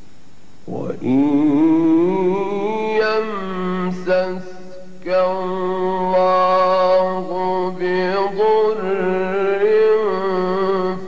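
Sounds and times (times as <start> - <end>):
man chanting solo: 0.7 - 11.0.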